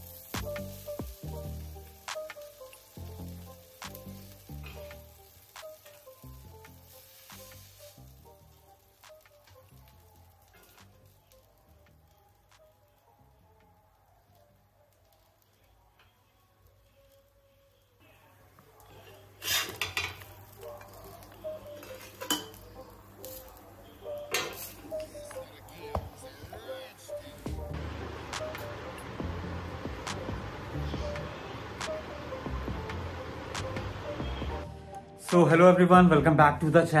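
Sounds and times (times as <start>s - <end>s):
egg and bread sizzling in pan: 0.0s - 13.4s, 18.4s - 34.6s
spatula scraping griddle pan: 19.4s - 20.3s
music with beat and bass: 27.5s - 34.8s.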